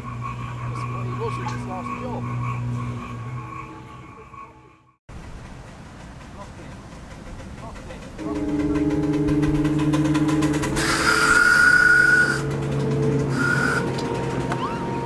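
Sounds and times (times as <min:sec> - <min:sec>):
steady low tone: 0:00.0 - 0:05.0, 0:07.3 - 0:15.0
steam whistle: 0:08.3 - 0:12.6, 0:13.3 - 0:15.0.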